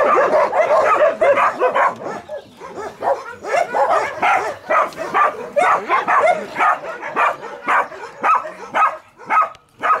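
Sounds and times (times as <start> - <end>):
dog barking: 0.0 - 10.0.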